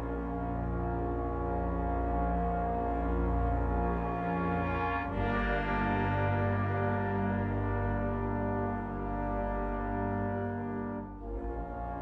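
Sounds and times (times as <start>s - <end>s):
held brass-like chords: 0.0s - 12.0s.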